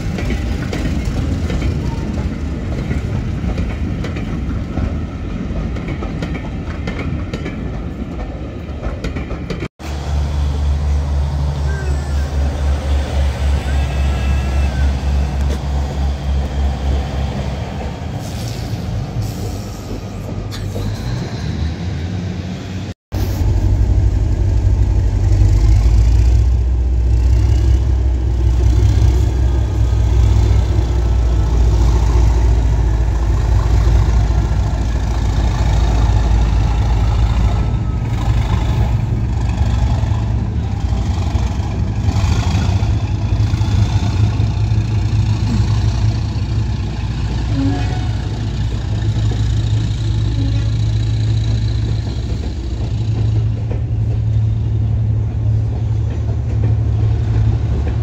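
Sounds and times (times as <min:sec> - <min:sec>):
diesel train engine rumbling: 0:00.0 - 0:58.0.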